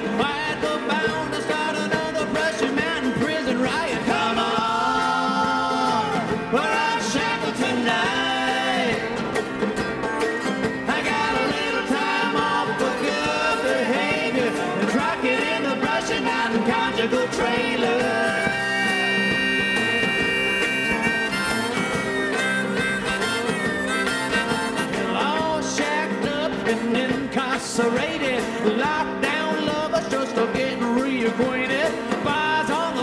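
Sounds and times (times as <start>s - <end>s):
bluegrass string band: 0.0s - 33.0s
harmonica lead: 0.0s - 33.0s.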